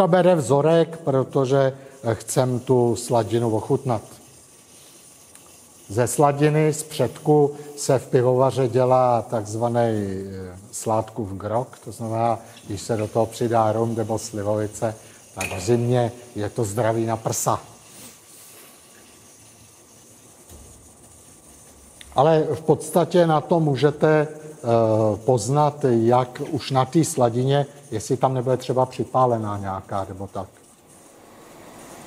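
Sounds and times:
liquid running from tap hiss: 0.0s - 32.0s.

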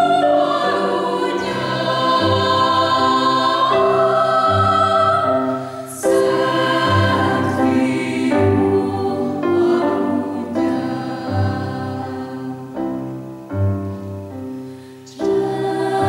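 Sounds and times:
mixed choir singing: 0.0s - 13.4s, 15.1s - 16.0s.

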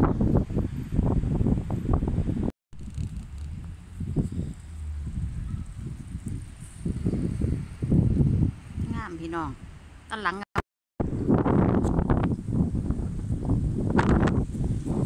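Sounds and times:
wind buffeting microphone: 0.0s - 10.1s, 11.0s - 15.0s.

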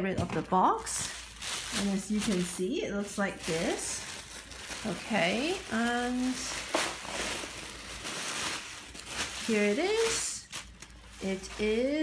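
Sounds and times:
tissue paper rustling: 0.6s - 12.0s.

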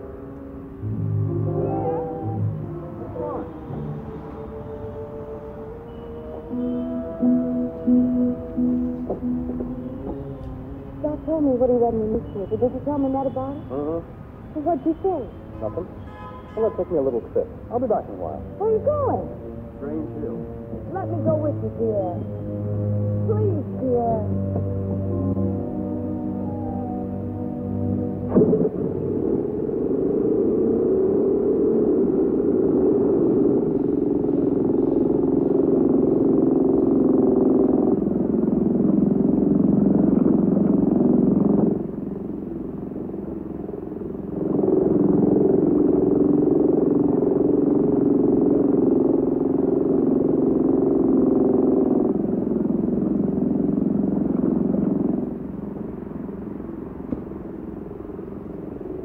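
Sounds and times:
muffled orchestral music: 0.0s - 36.3s.

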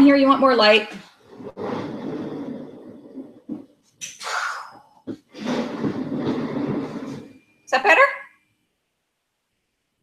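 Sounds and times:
woman speaking: 0.0s - 1.0s, 7.7s - 8.3s.

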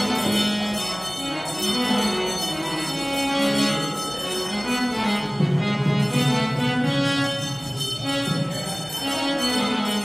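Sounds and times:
harmonium melody: 0.0s - 10.0s
drum strokes: 1.6s - 10.0s.

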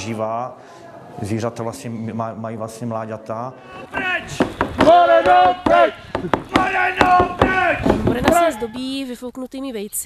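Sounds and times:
group singing folk song: 0.6s - 8.4s
wooden stick knocks: 4.3s - 8.5s.

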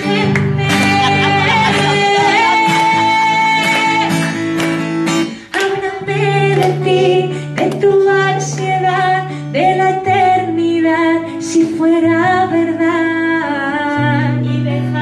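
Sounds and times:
woman singing: 0.0s - 4.4s, 5.4s - 15.0s
acoustic guitar strumming: 0.0s - 15.0s.

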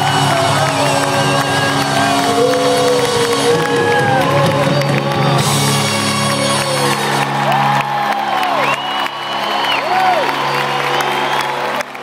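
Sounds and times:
crowd cheering and whooping: 0.0s - 12.0s
live band music: 0.0s - 12.0s.

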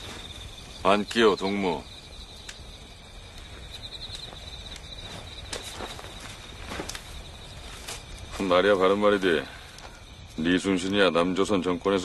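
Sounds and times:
insects chirping: 0.0s - 12.0s
soft rustles and footfalls: 3.2s - 10.4s.

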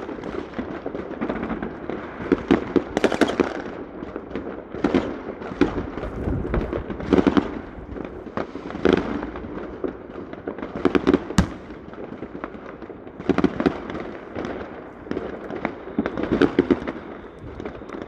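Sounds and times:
fireworks bangs and crackling: 0.0s - 18.0s.

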